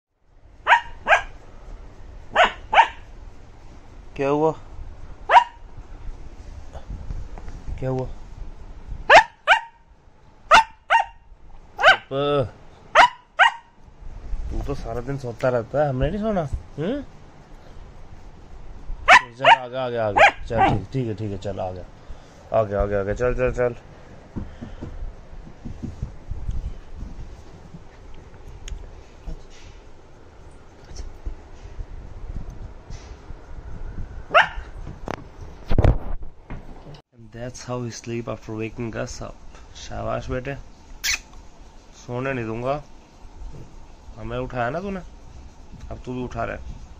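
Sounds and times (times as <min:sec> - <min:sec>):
puppy yapping: 0:00.7 - 0:01.4, 0:02.3 - 0:03.1, 0:05.3 - 0:05.6, 0:09.1 - 0:09.8, 0:10.5 - 0:11.2, 0:11.8 - 0:12.1, 0:12.9 - 0:13.7, 0:19.1 - 0:20.8, 0:34.3 - 0:34.7.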